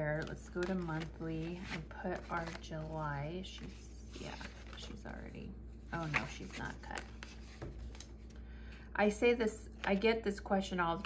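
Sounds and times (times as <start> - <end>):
paper rustling: 0.1 - 5.3, 5.9 - 8.3.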